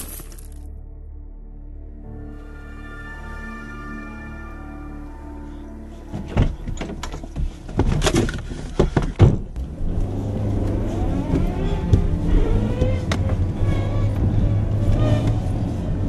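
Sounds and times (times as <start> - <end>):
car engine running: 7.4 - 16.0.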